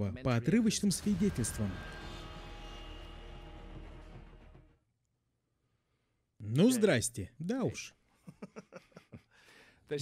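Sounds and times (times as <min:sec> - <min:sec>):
cinematic drone: 0:00.9 - 0:04.8.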